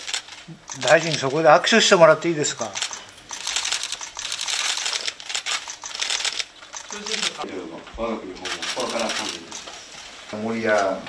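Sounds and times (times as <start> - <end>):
camera shutter clicks: 0.0 - 1.5, 2.6 - 7.5, 8.5 - 9.8.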